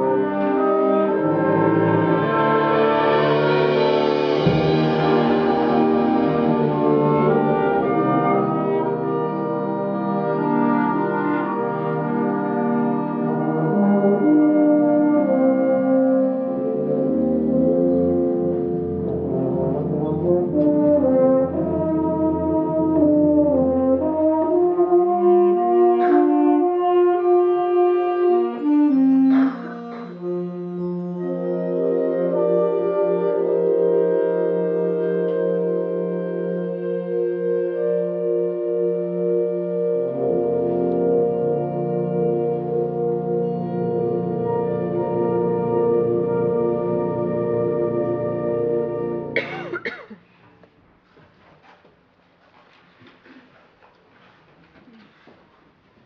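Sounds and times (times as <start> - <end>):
wind band playing brass chords: 0.0 - 49.9.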